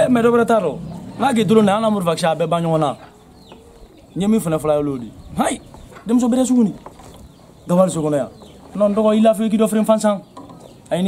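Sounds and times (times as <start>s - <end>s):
man speaking: 4.2s - 6.8s, 7.7s - 10.2s.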